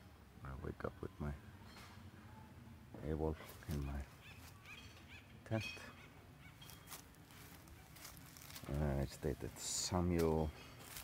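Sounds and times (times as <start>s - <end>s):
bird calling: 3.3s - 8.6s.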